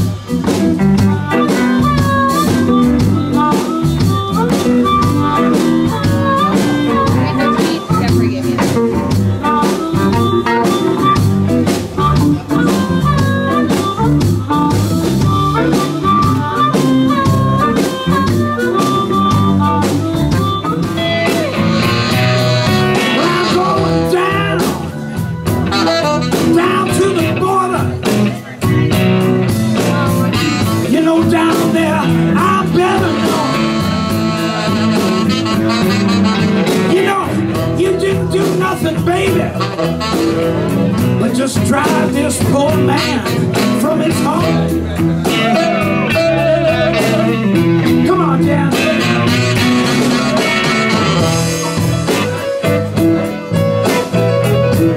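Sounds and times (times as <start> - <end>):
electric blues band playing: 0.0 - 54.9.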